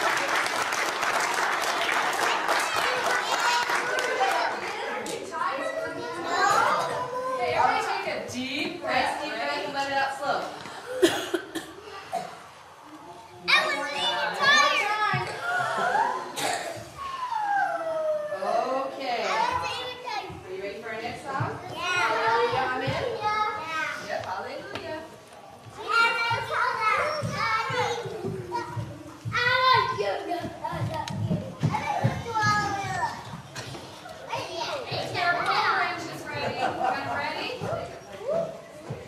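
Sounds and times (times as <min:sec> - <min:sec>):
children chattering and calling out: 0:02.2 - 0:20.7, 0:21.3 - 0:39.0.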